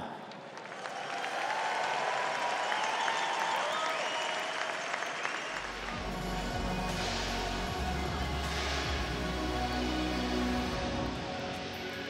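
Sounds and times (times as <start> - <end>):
audience applauding: 0.0 - 7.3
music with deep bass line: 5.6 - 12.0.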